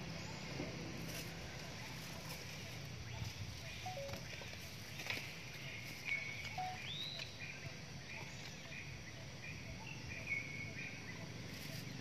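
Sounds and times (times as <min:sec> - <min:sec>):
high chirps and whistles: 0:03.2 - 0:04.3, 0:06.1 - 0:07.4.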